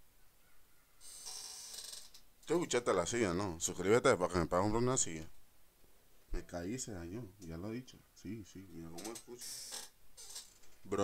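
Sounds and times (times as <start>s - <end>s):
desk chair creaking: 1.0s - 2.3s, 9.0s - 10.9s.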